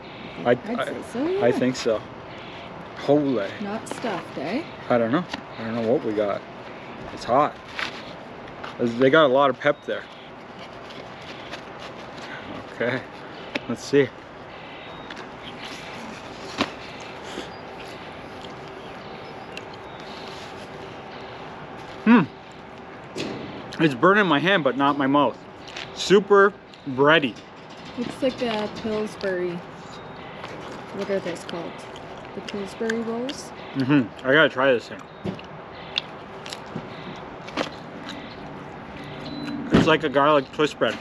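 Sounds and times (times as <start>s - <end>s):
outdoor background hum: 0.0s - 41.0s
chewing bread crust: 15.0s - 21.0s, 34.9s - 39.1s
man humming hmm: 22.0s - 22.4s, 33.8s - 34.1s.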